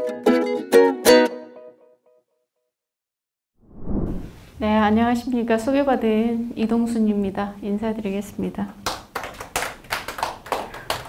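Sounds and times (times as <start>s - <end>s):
few people clapping: 8.8s - 11.0s.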